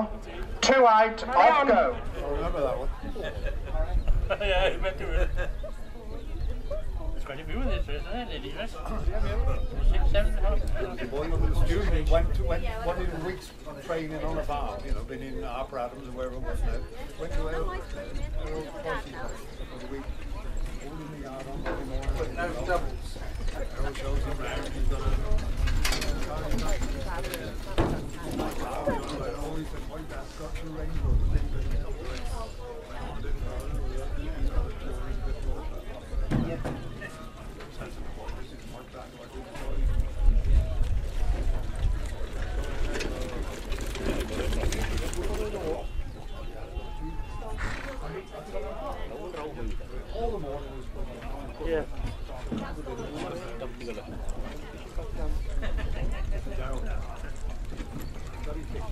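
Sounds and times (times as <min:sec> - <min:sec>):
people talking: 0:00.0 - 0:58.9
wind on microphone: 0:02.0 - 0:08.2, 0:08.8 - 0:13.4, 0:30.1 - 0:36.6, 0:39.6 - 0:47.8.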